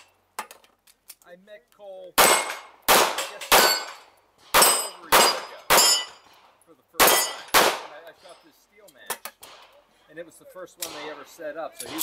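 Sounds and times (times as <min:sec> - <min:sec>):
handgun shots: 0:02.2 - 0:06.1, 0:07.0 - 0:07.9
steel plate ringing: 0:04.6 - 0:06.2.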